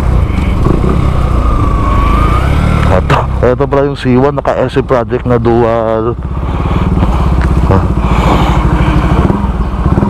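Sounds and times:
motorcycle engine running at low revs: 0.0s - 10.0s.

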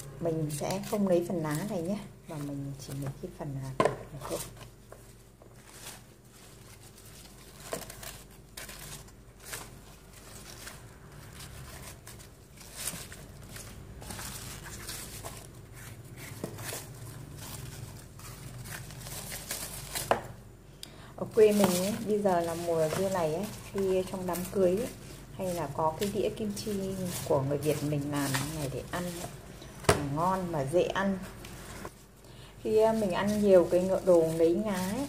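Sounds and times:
leaves rustling: 4.2s - 20.4s, 21.2s - 35.0s.

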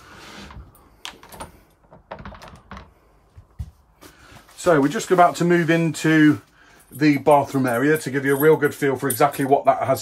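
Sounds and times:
soft rustle: 3.6s - 7.5s.

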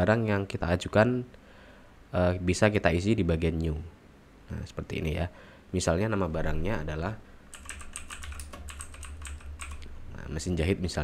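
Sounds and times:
keyboard typing: 7.5s - 9.9s.

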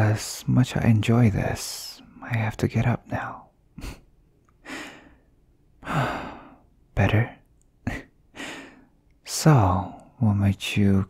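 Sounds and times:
man sighing: 5.8s - 6.6s.

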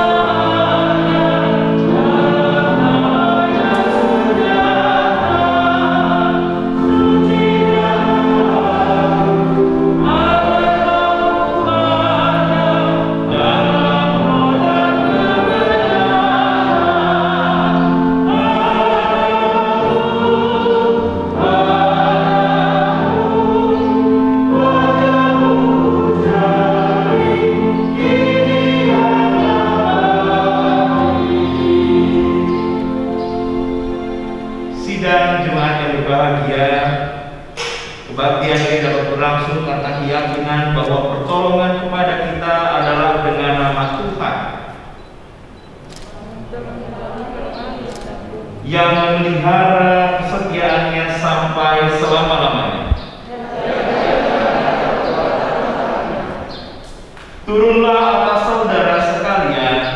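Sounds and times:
instrument holding long chords: 0.0s - 37.4s
group singing a hymn: 0.0s - 45.7s, 46.4s - 59.9s.

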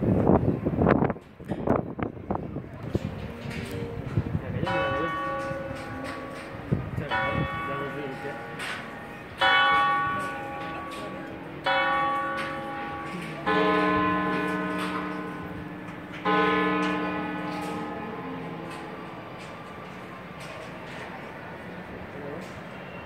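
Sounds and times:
deeper bell striking: 3.3s - 20.3s.

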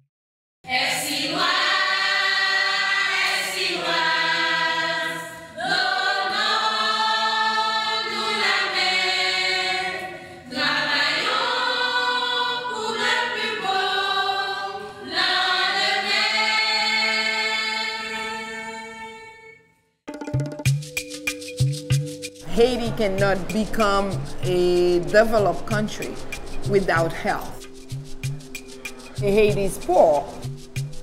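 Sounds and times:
choir singing in harmony: 0.7s - 19.6s.

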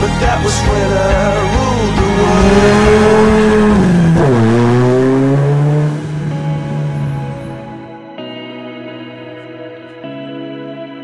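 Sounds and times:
music: 0.0s - 11.0s
car engine running hard: 0.7s - 7.9s.

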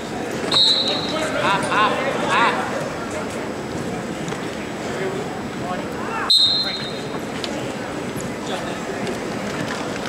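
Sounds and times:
crowd babble and shouts: 0.0s - 10.0s
referee's whistle: 0.5s - 1.2s, 6.3s - 7.1s.

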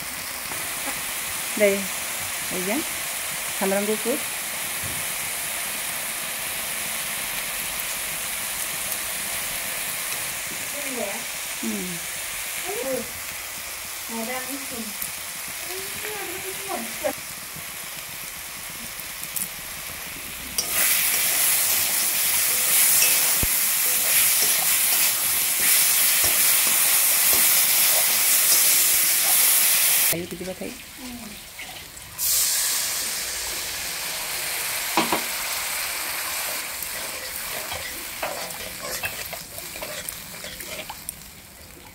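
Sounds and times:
paste sizzling in oil: 0.0s - 41.9s.

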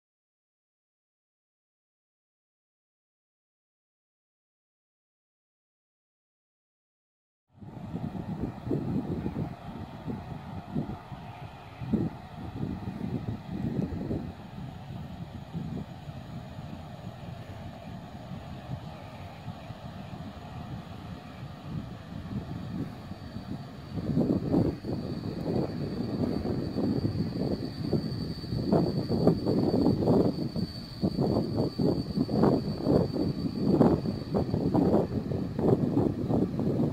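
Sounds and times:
distant train rumble: 7.6s - 36.9s
thin high whine: 7.6s - 36.9s
wind on microphone: 7.6s - 36.9s.

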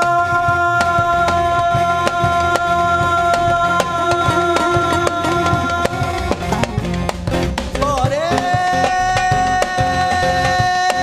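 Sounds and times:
man singing: 0.0s - 6.9s, 7.7s - 11.0s
keyboard: 0.0s - 11.0s
steady drum beat: 0.0s - 11.0s.

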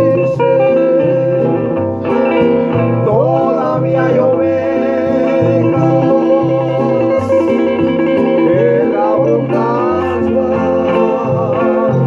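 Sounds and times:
classical guitars playing: 0.0s - 12.0s.

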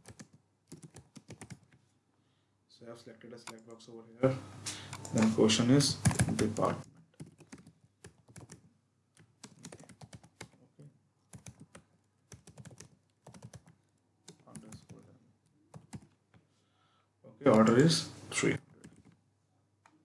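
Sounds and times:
faint keyboard typing: 0.0s - 1.9s, 3.4s - 3.8s, 4.7s - 16.6s, 17.4s - 20.0s.

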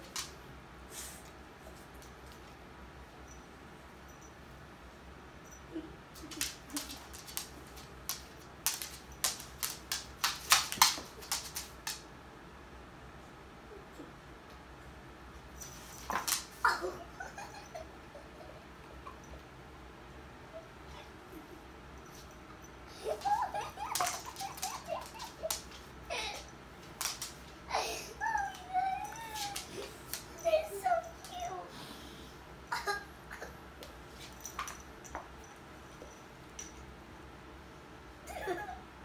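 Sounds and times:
dog claws clicking on wood floor: 6.3s - 12.0s, 23.9s - 25.9s, 26.8s - 27.5s.

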